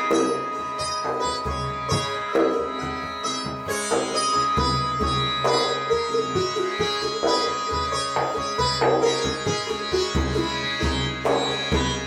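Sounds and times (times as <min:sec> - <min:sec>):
high drone tone: 0:00.0 - 0:12.0
plucked string instrument: 0:00.0 - 0:12.0.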